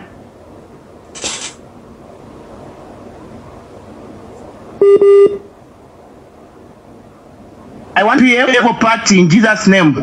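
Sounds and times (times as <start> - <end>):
faint phone line hiss: 3.3 - 5.5
electronic telephone beeps: 4.8 - 5.4.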